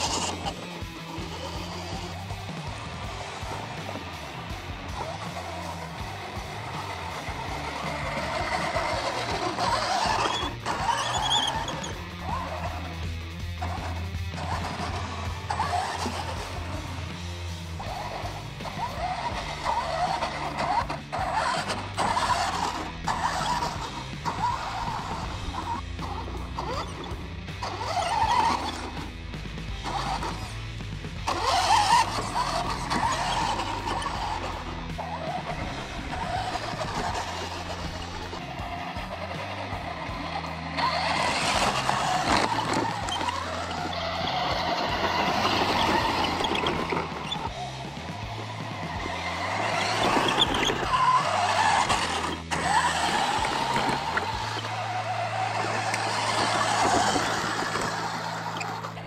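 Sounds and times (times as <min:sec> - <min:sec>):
background music: 0:00.0 - 0:59.0
rc truck motor and tyres: 0:00.0 - 0:59.0.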